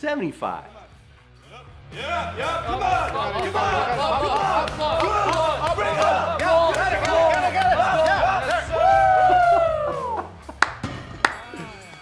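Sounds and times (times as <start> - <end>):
men cheering: 1.9 - 10.6.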